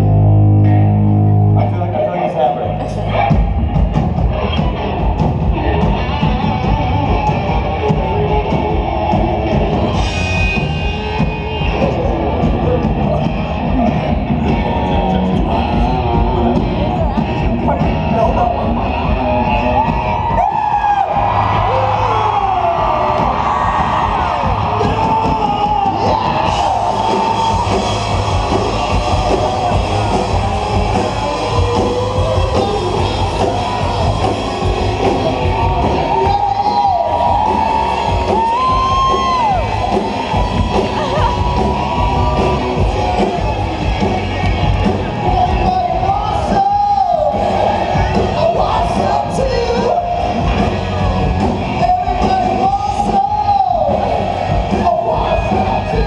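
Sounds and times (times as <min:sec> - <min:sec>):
crowd yelling and cheering: 0:00.0 - 0:56.0
drums: 0:00.0 - 0:56.0
electric guitar riff: 0:21.2 - 0:46.6.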